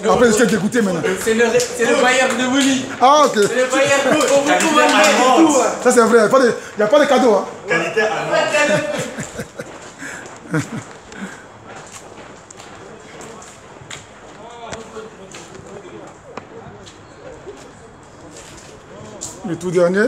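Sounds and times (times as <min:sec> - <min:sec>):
faint voices talking: 0:00.0 - 0:20.0
outdoor ambience: 0:00.0 - 0:20.0
clicks and scuffs: 0:08.6 - 0:19.5.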